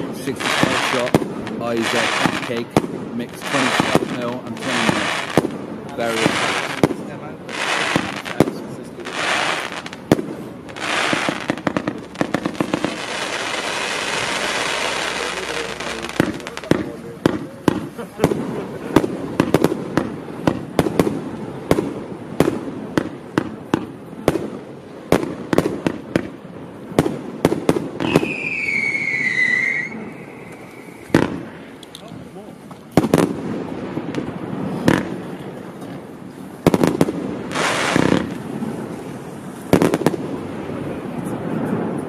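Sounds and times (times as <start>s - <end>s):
firework barrage shots: 0.0s - 31.8s, 32.9s - 42.0s
firework crackling: 0.0s - 42.0s
high falling whistle: 28.0s - 31.1s.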